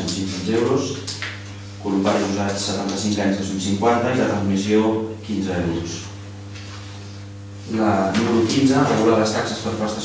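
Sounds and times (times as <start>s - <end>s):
man speaking: 0.0s - 1.1s, 1.8s - 6.2s, 7.7s - 10.0s
electrical mains hum: 0.0s - 10.0s.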